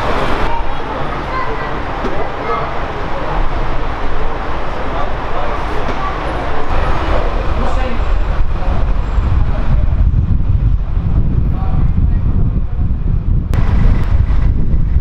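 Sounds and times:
people talking: 0.0s - 10.5s, 11.1s - 13.0s
heavy low rumble: 0.0s - 15.0s
traffic noise: 0.0s - 15.0s.

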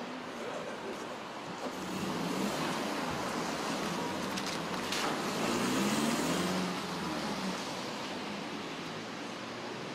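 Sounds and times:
city traffic noise: 0.0s - 9.9s.

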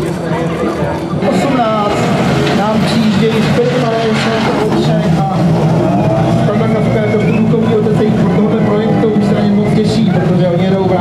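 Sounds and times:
car engine running at low revs: 1.7s - 11.0s.

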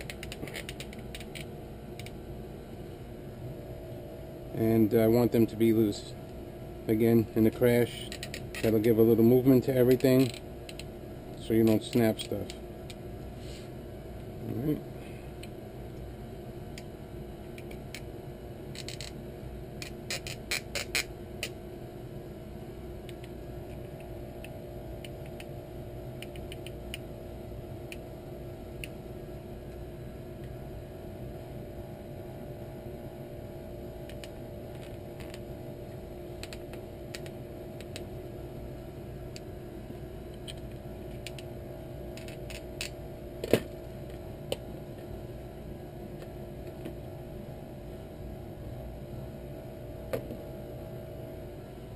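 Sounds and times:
steady low hum: 0.0s - 51.9s.

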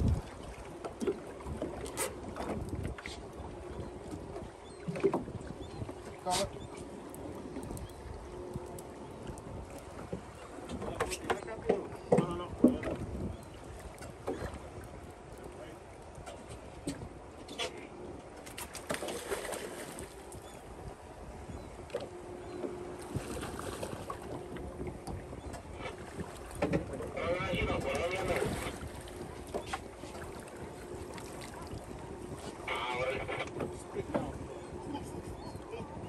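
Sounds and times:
wind on microphone: 0.0s - 0.7s, 1.4s - 15.5s, 19.2s - 36.0s
water noise: 0.0s - 36.0s
boat engine idling: 20.2s - 36.0s.

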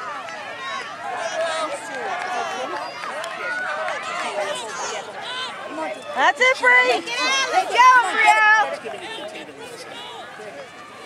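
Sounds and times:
voices calling and shouting: 0.0s - 11.0s.

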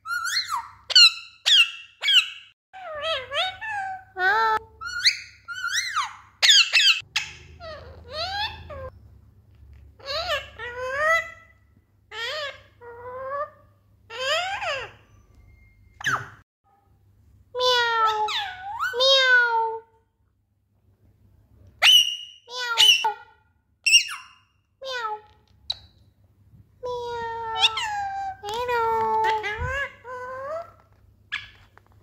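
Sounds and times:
parakeet chattering: 4.8s - 8.9s
parakeet sharp high calls: 4.9s - 8.9s.

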